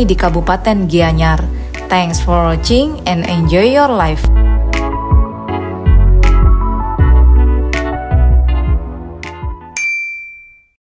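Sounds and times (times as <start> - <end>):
electronic background music: 0.0 - 9.8
bright bell-like chime: 9.8 - 10.8.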